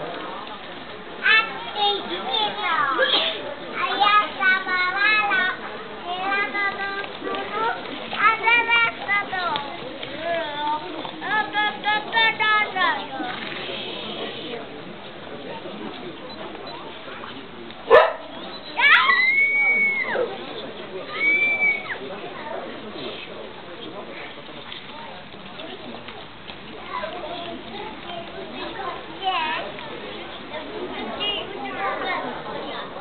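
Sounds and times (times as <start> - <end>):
crowd murmur: 0.0 - 33.0
dog barking: 17.9 - 18.3
children calling out: 18.6 - 20.4, 21.0 - 22.1.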